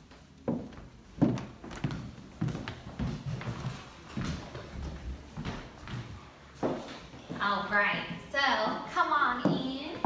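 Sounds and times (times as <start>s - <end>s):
footsteps on hard floor: 0.4s - 7.6s.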